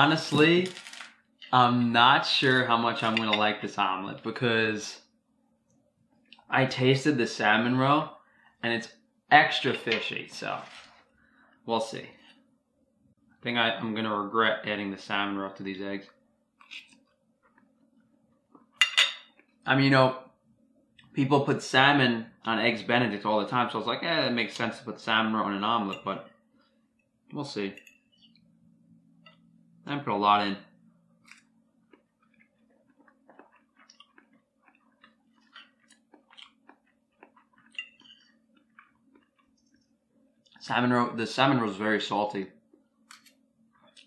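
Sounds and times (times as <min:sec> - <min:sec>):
low steady hum: 0:00.0 - 0:44.0
faint chewing: 0:31.2 - 0:40.6.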